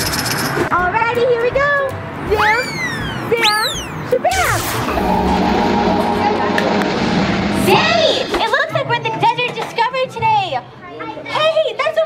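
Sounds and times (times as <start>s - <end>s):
high-pitched voices squealing: 2.3s - 4.8s.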